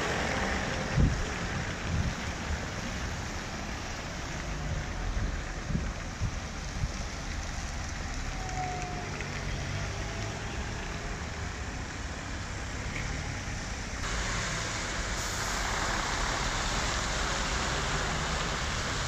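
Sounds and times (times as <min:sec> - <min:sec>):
bus engine: 0:00.0 - 0:19.0
car engines running: 0:00.0 - 0:19.0
tyres hissing on wet road: 0:00.0 - 0:19.0.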